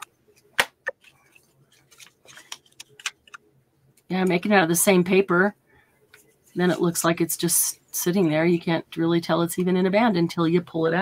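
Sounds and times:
paper rustling: 0.6s - 3.4s.

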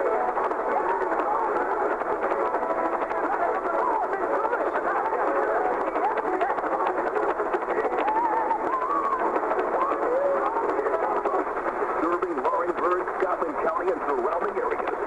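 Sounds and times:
radio static crackles: 0.0s - 15.0s.

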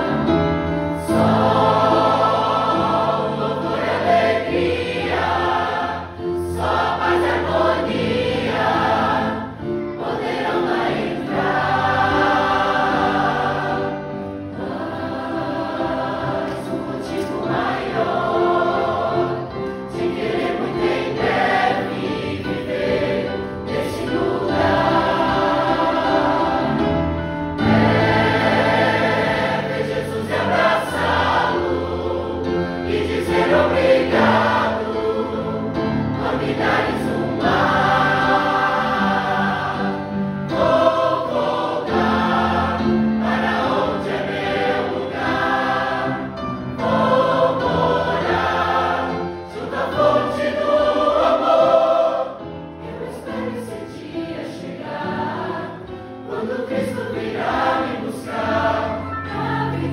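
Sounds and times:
mixed choir singing a hymn: 0.0s - 59.9s.

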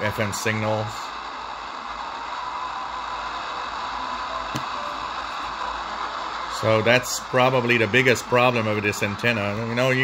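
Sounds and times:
radio static hiss: 0.0s - 10.0s.

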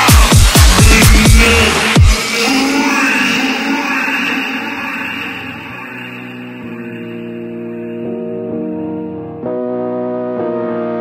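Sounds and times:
heavy electronic beat: 0.0s - 7.7s
steady keyboard notes: 6.4s - 11.0s.

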